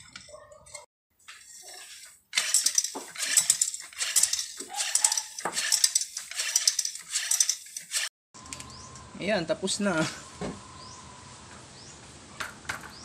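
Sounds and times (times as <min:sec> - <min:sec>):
hand pump hissing air: 0:01.5 - 0:08.1.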